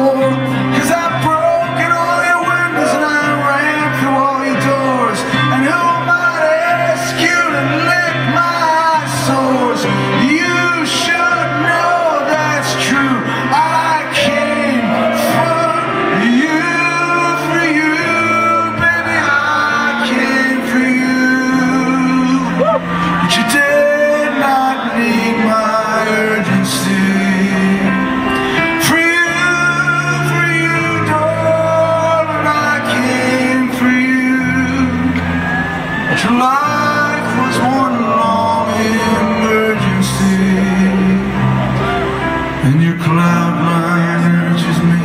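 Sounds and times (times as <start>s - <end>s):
man singing a slow ballad: 0.0s - 45.0s
piano chords: 0.0s - 45.0s
rock band accompaniment: 0.0s - 45.0s.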